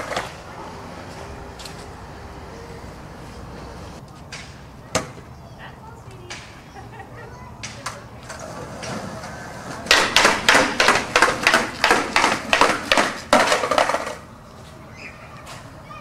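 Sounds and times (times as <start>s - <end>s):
skateboard wheels clacking on stairs: 8.4s - 14.2s.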